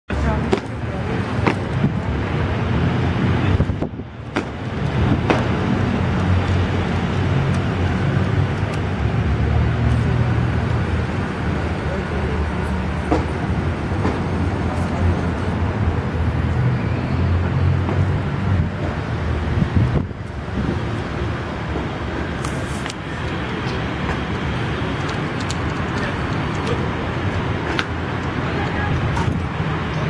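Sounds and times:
people's voices: 0.1 - 19.2, 21.4 - 30.0
road traffic rumble: 0.1 - 30.0
scattered clicks: 22.4 - 26.8.

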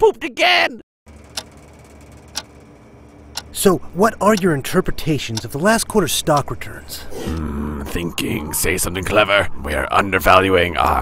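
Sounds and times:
clock ticking: 1.2 - 2.6, 3.3 - 4.6, 5.3 - 5.7, 6.3 - 6.5.

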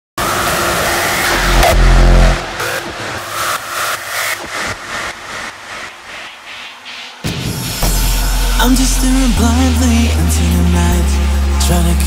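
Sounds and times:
noise wash with high tone: 0.2 - 11.7
deep bass hit: 1.4 - 2.7.

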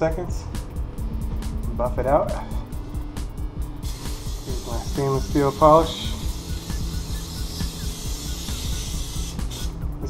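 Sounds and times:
background music with low beat: 0.0 - 10.0
aerosol can spraying hiss: 3.8 - 9.8.

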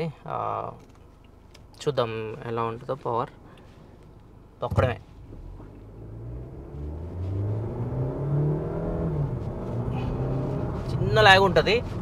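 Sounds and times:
car engine accelerating hard: 5.2 - 12.0.

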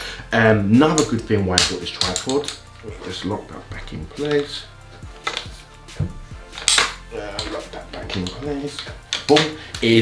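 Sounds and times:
metal tripod leg clatter: 5.2 - 5.5, 6.5 - 9.5
tripod leg clicks: 5.2 - 9.6.

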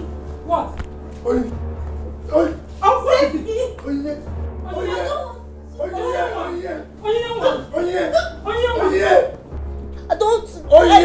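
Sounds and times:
people crying out and sobbing: 4.6 - 9.6, 10.7 - 11.0.

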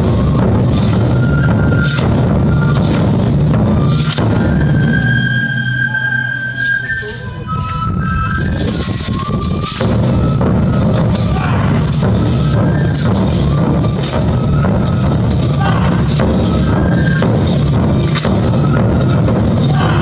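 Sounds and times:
dense drumming: 0.0 - 6.3, 8.0 - 20.0
high flute long notes: 0.0 - 20.0.

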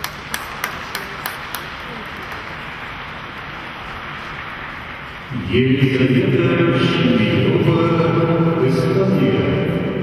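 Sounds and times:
audience applause: 0.0 - 4.8.

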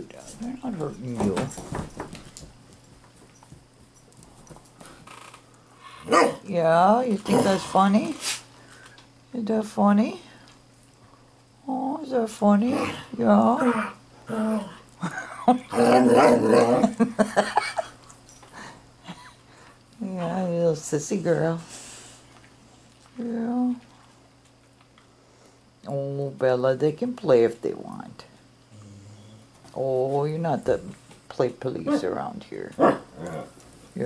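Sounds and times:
faint steady hum: 0.0 - 34.0
dog claws tapping on wooden floor: 0.7 - 5.0
dog grumbling: 7.2 - 7.9, 12.6 - 17.0, 28.7 - 29.5, 31.9 - 33.6.

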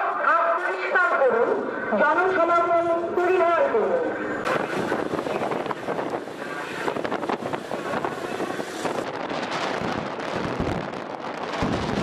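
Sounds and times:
road and engine noise: 0.0 - 12.0
wind buffeting microphone: 4.3 - 12.0.

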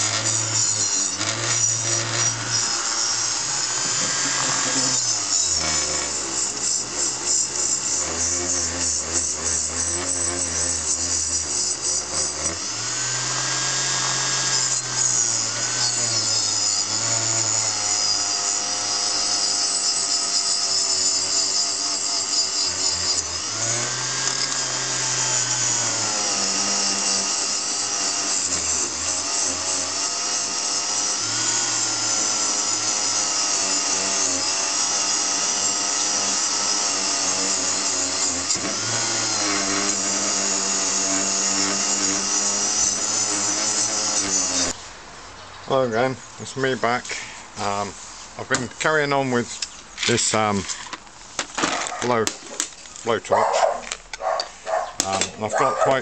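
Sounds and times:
power tool motor whining: 0.0 - 44.8, 49.6 - 56.0.

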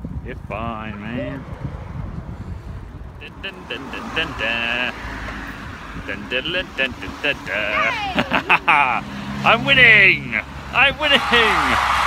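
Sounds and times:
wind on microphone: 0.0 - 4.4, 5.0 - 7.5
road traffic rumble: 0.0 - 12.0
person calling out: 6.9 - 8.4.

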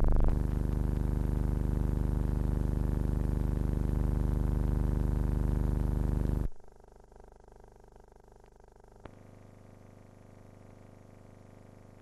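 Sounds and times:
loud low electrical hum: 0.0 - 7.2
faint hum and hiss: 0.0 - 12.0.

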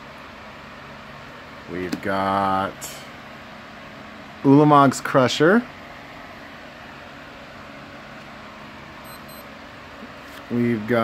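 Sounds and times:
room noise hum and hiss: 0.0 - 11.0.

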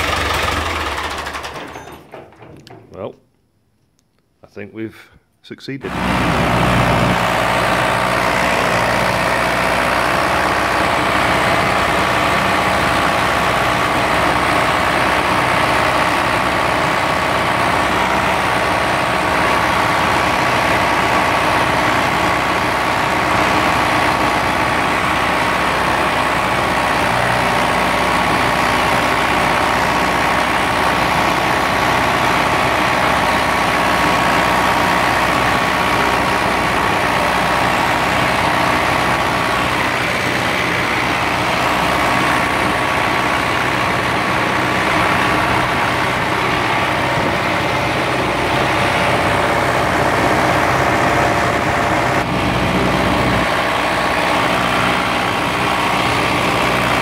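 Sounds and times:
tractor diesel engine running: 0.0 - 3.2, 5.8 - 57.0.

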